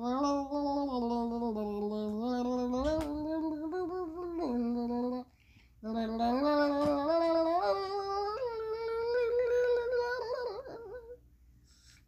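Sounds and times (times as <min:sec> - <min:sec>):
girl singing wordless tune: 0:00.0 - 0:11.2.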